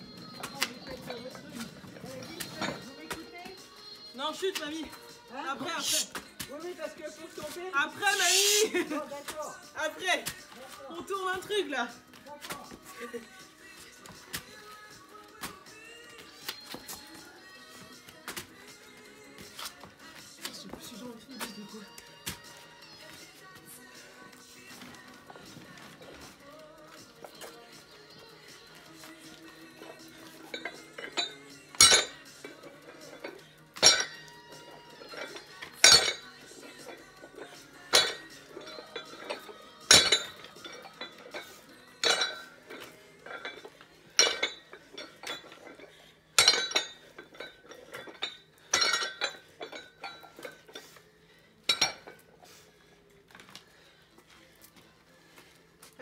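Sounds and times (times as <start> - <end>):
faint music: 0.0 - 56.0
metal dumbbell plates clanking: 30.4 - 50.9.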